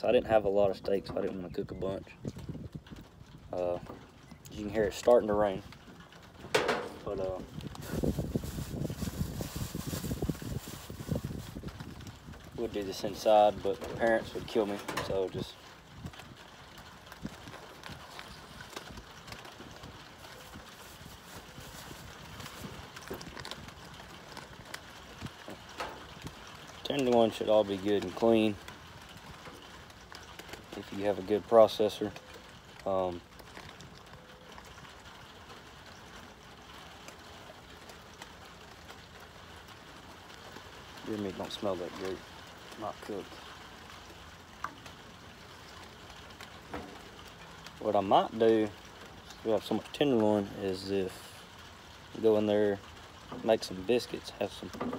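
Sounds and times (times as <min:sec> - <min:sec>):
light rain on wooden roof: 0:00.0 - 0:54.9.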